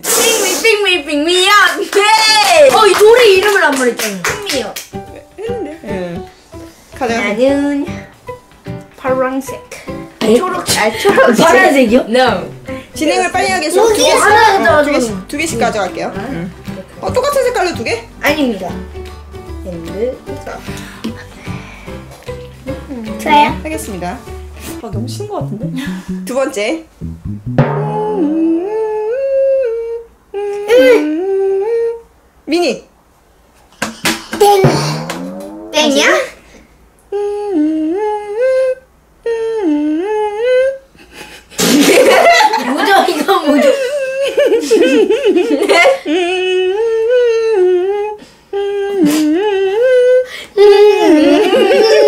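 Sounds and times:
person humming a melody: 22.6s - 23.2s, 25.0s - 26.3s, 27.0s - 32.1s, 37.1s - 41.0s, 46.1s - 52.0s.

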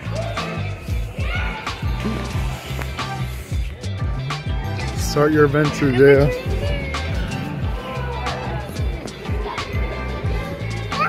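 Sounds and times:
bass line: 0.0s - 11.0s
steady drum beat: 0.6s - 10.9s.

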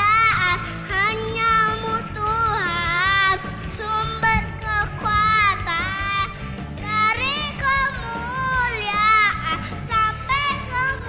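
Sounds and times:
boy singing into a microphone: 0.0s - 11.0s.

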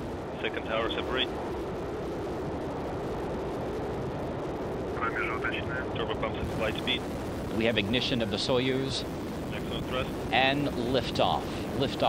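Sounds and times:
rocket engines firing: 0.0s - 12.0s.

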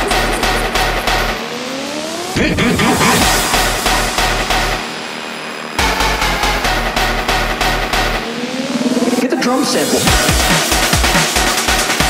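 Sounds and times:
rising synth sweep: 0.0s - 10.9s
dubstep music: 0.0s - 12.0s.

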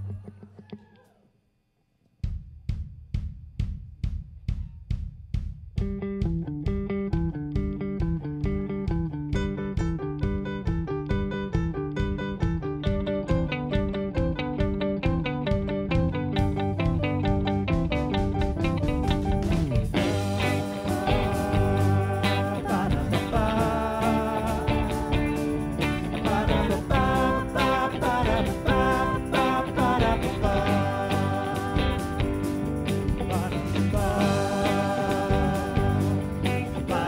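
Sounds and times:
drum beat: 2.2s - 10.5s, 14.3s - 37.0s
bass and guitar riff: 5.8s - 37.0s.

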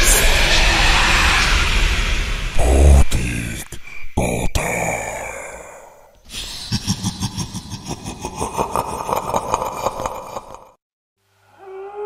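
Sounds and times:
breathy sigh-like sound: 5.3s - 6.9s.

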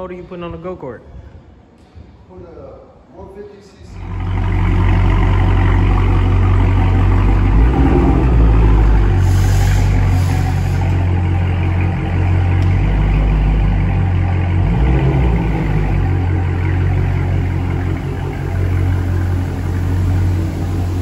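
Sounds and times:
car engine idling: 3.9s - 21.0s.

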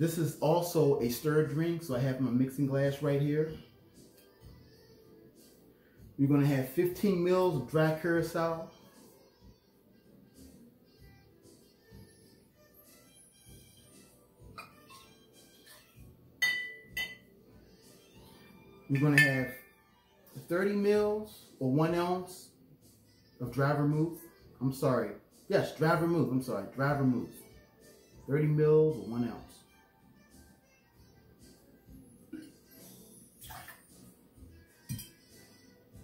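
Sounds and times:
metal jigger clinking on glass: 18.9s - 19.5s
liquid pouring: 33.4s - 33.9s.

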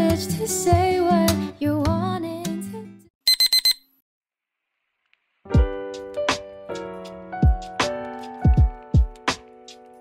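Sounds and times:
high-pitched electronic beeps: 3.3s - 3.8s.

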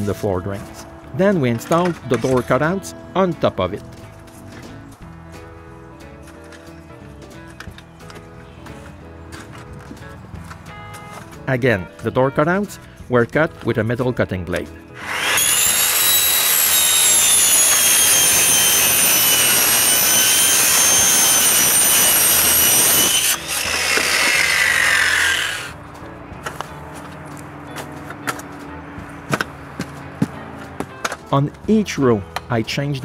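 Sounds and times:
circular saw whining: 15.0s - 25.8s.

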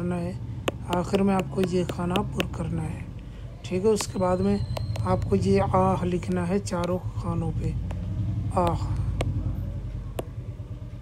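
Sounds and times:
low background rumble: 0.0s - 11.0s
sharp clicks: 0.7s - 2.6s, 3.9s - 7.0s.

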